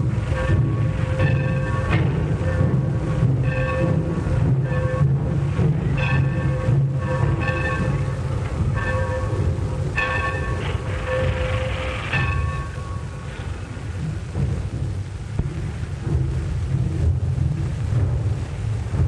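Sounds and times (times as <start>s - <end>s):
locomotive bell ringing: 0.0s - 13.6s
steam engine rumble and hiss: 0.0s - 19.0s.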